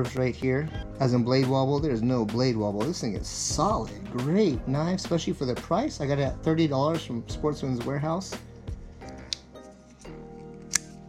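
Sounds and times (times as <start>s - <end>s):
metallic knife clicks: 10.5s - 11.0s.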